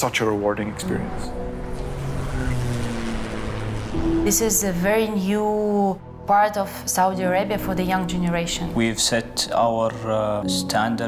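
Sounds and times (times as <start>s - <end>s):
road and wind noise: 0.0s - 6.2s
car driving: 0.0s - 6.3s.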